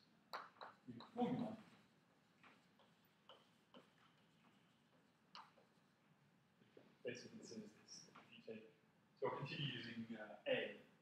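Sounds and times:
chalk tapping on blackboard: 2.5 - 5.8.

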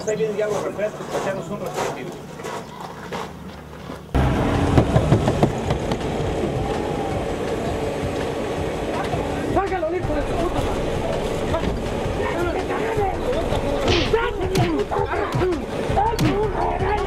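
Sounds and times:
minivan engine running: 4.1 - 17.0.

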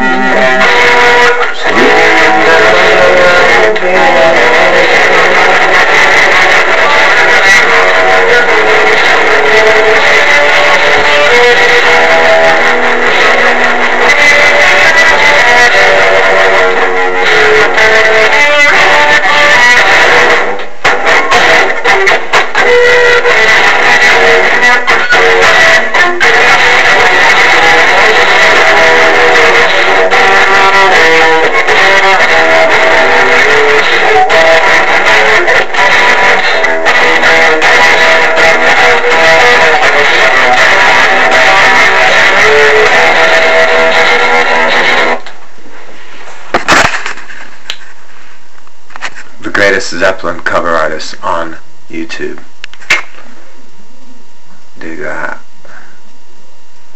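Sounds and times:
electric guitar playing: 0.0 - 47.1.

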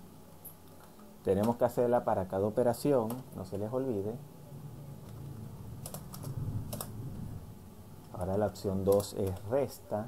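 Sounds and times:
computer keyboard keys clicking: 5.8 - 7.0, 8.8 - 9.6.

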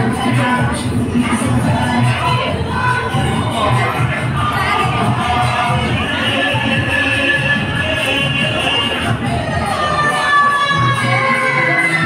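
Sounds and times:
loud dance music: 0.0 - 12.0
women calling out and cheering: 0.0 - 12.0.

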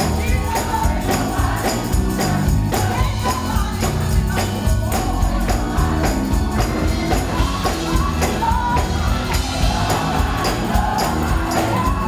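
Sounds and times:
woman singing lead vocal: 0.0 - 1.6, 2.7 - 5.9, 7.0 - 12.0
band playing: 0.0 - 12.0
steady percussion beat: 0.0 - 12.0.

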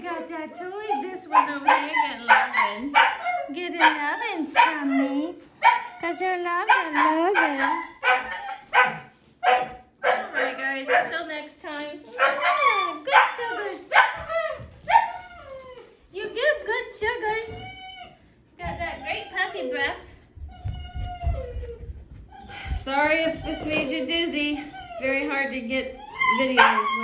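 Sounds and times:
puppy barking: 0.9 - 11.2, 12.1 - 15.5, 26.2 - 27.0
soft low thumps: 20.2 - 24.2.

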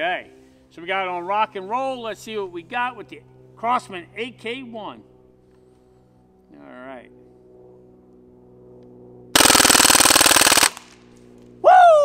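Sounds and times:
bb rifle full-auto firing: 9.4 - 11.1.

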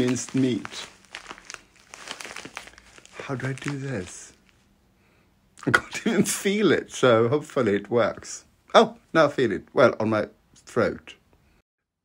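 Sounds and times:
packet crinkling against towel: 0.0 - 4.7.

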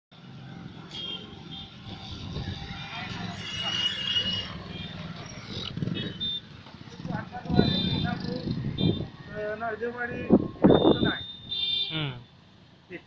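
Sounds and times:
passing traffic: 0.1 - 13.0
people talking: 11.9 - 12.2.

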